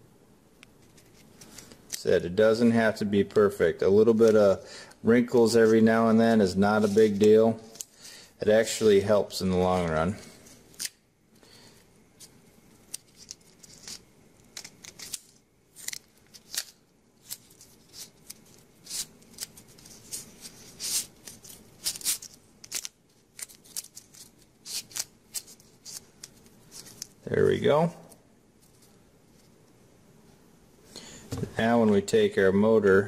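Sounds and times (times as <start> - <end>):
masking tape crinkling: 6.7 - 9.0, 12.2 - 27.5.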